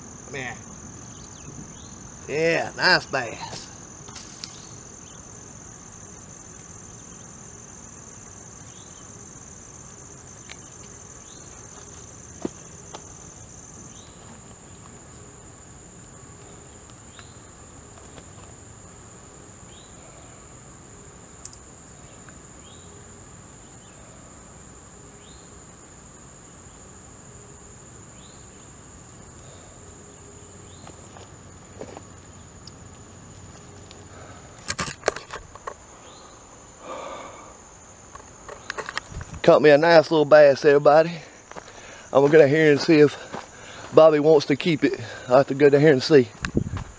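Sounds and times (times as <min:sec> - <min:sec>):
insects droning: 0:00.0 - 0:46.9.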